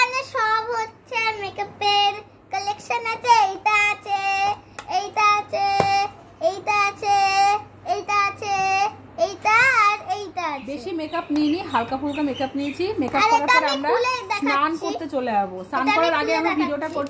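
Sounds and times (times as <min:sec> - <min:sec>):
girl singing in high voice: 0:00.6 - 0:10.1.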